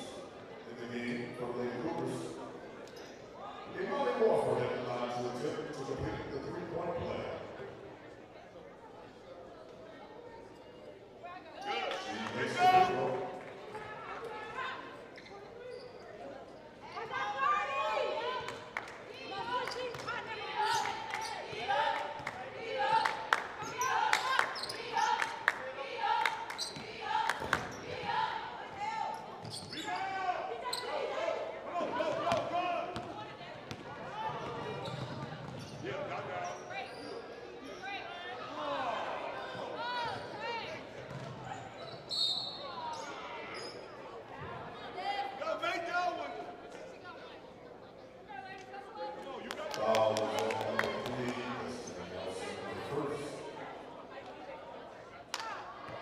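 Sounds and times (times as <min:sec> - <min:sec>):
voices calling out echoing: 0:11.2 - 0:56.0.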